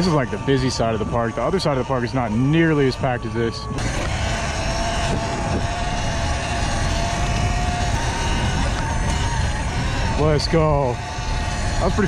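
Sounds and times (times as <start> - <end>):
electric dirt bike motor whine: 0.0 - 12.0
wind rumble on microphone: 0.0 - 12.0.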